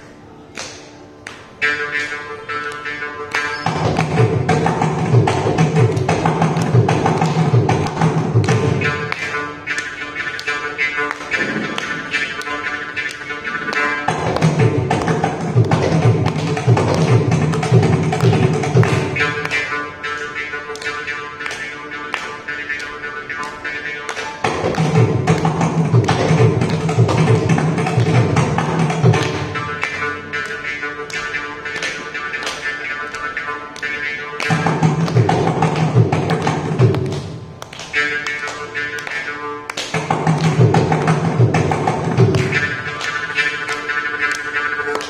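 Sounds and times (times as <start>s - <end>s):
mridangam drum strokes: 1.6s - 45.0s.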